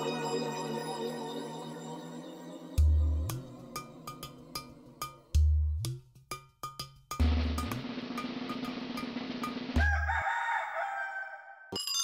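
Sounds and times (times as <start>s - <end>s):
background music drumbeat: 2.8s - 10.8s
rooster crowing: 9.8s - 11.7s.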